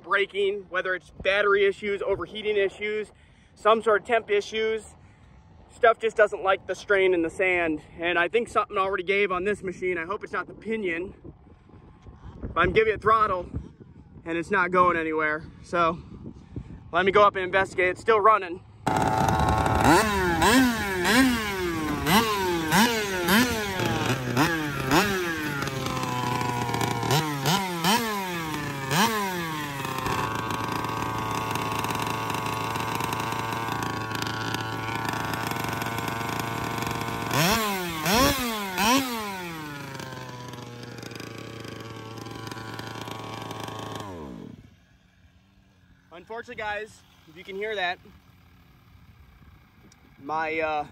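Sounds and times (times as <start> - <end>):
two-stroke engine revving and idling: 18.7 - 50.9.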